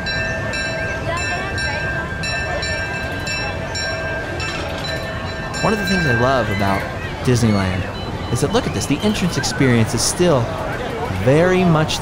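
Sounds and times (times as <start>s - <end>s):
crowd murmur: 0.0s - 12.0s
steady held tones: 0.0s - 12.0s
train rumbling: 0.0s - 12.0s.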